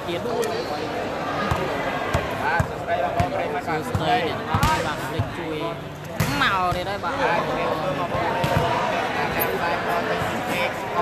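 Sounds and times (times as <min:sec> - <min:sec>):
crowd chatter and shouts: 0:00.0 - 0:11.0
volleyball bouncing on court: 0:01.5 - 0:05.4, 0:06.2 - 0:07.0, 0:08.4 - 0:08.8.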